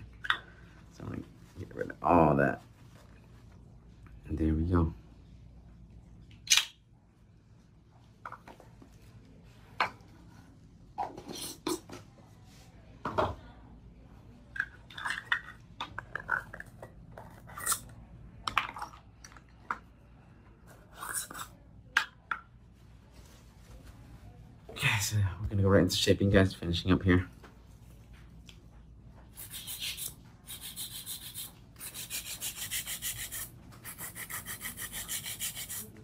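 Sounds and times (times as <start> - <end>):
paper towel rustling: 1.0 - 3.8, 22.8 - 24.6.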